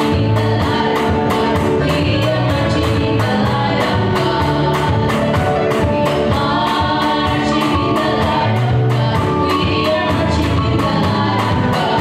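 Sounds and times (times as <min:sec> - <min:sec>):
girls singing gospel song: 0:00.0 - 0:12.0
musical accompaniment with beat: 0:00.0 - 0:12.0.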